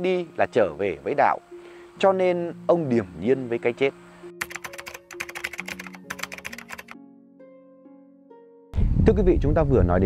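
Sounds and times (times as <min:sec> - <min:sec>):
fast sharp clicks: 0:04.4 - 0:07.0.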